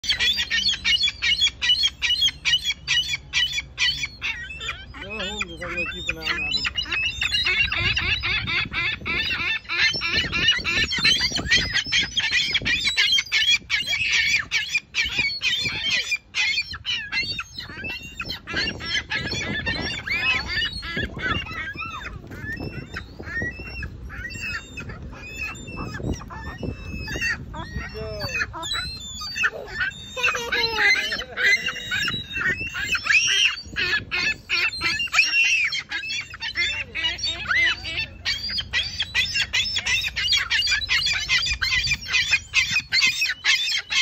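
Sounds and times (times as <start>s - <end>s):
gulls calling: 0.0s - 44.0s.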